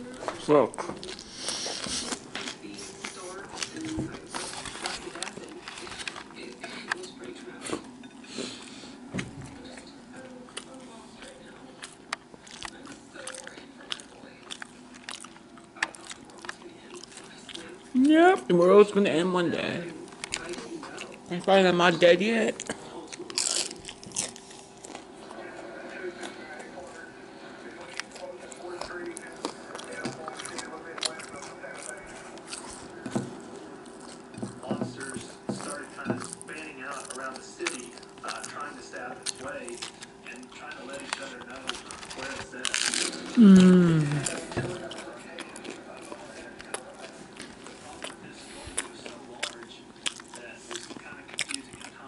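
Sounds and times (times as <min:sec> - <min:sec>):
chewing: 0:00.0 - 0:18.8, 0:19.8 - 0:21.3, 0:22.5 - 0:52.0
taco shell crunch: 0:22.9 - 0:27.0, 0:27.7 - 0:33.0, 0:35.0 - 0:52.0.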